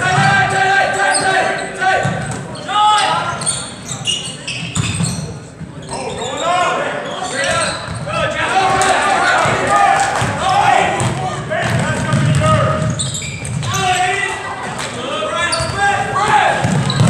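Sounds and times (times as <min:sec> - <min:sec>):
sneakers squeaking: 0:00.0 - 0:09.6, 0:11.0 - 0:14.8, 0:15.4 - 0:17.0
basketball bouncing: 0:11.0 - 0:13.8, 0:15.6 - 0:17.0.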